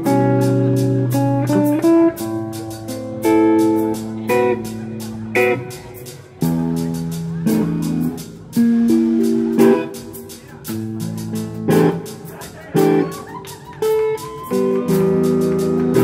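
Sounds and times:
guitar chords ringing: 0.0 - 16.0
live rock band playing: 0.0 - 16.0.

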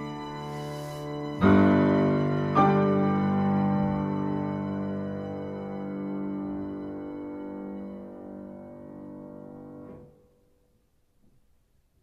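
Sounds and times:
viola bowed notes: 0.0 - 8.8
piano chords ringing: 0.0 - 10.6.

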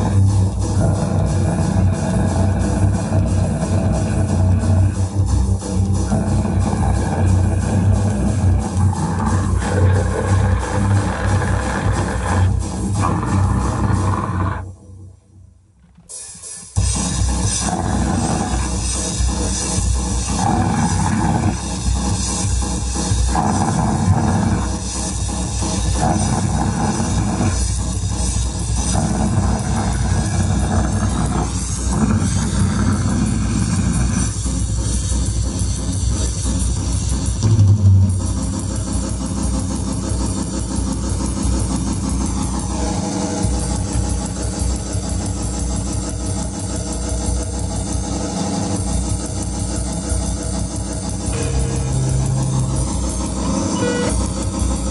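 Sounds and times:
punk band playing: 51.4 - 54.4.

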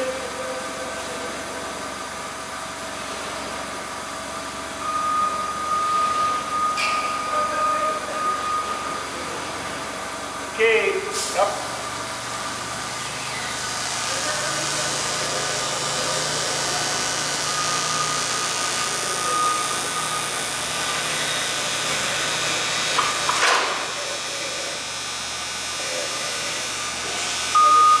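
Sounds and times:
forklift engine idling: 0.0 - 23.0.

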